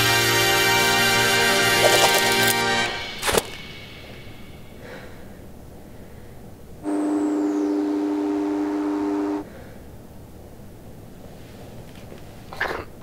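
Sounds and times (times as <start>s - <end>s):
faint high whine: 2.9s - 10.8s.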